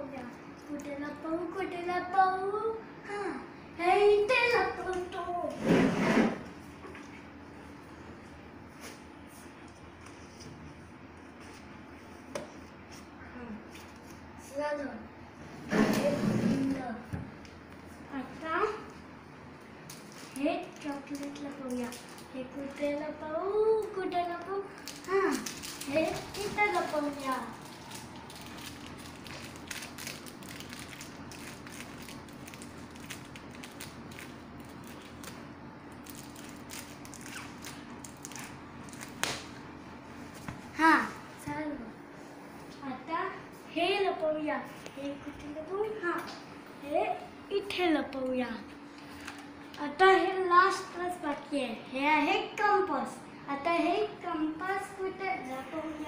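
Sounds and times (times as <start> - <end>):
hands rustling a packet: 19.9 - 22.8, 23.8 - 39.2.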